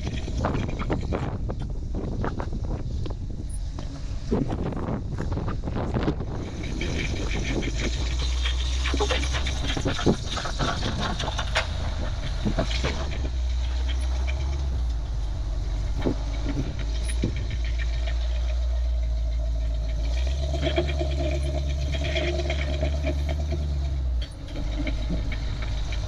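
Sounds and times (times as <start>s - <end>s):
buggy engine under load: 0.0s - 26.0s.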